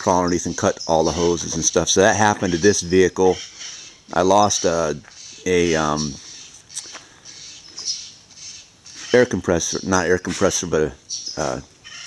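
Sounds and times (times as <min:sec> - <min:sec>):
low outdoor background: 0:00.0 - 0:12.0
high-pitched bird call: 0:02.4 - 0:10.0, 0:11.1 - 0:12.0.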